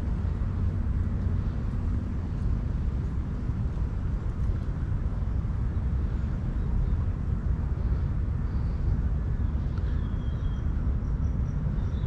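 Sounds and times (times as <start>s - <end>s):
fluctuating low rumble: 0.0s - 12.0s
faint bird chirps: 9.4s - 12.0s.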